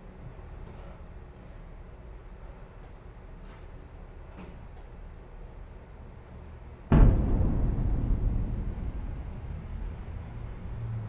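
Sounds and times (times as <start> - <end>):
heavy low boom: 6.9 - 11.0.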